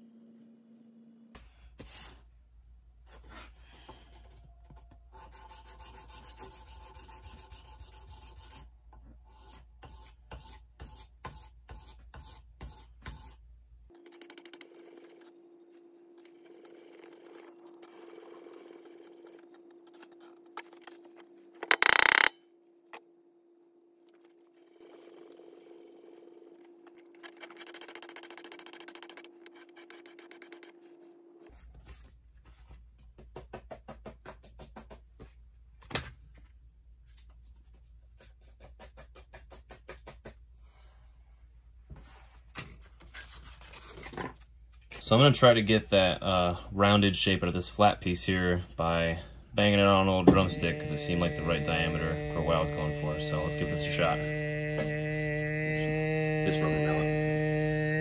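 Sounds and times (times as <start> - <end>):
metal sanding strokes: 5.2 - 8.7
steady low hum: 45.6 - 58.0.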